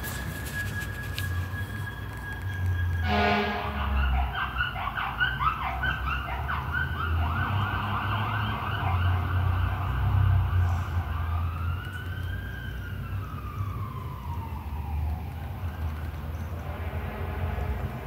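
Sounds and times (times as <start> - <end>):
siren yelping and wailing: 0.0 - 17.2.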